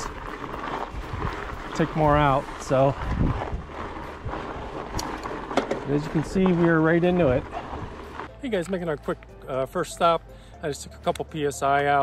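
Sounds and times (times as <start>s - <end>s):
wind buffeting microphone: 0.0s - 8.2s
bike tyres rolling on gravel: 0.0s - 12.0s.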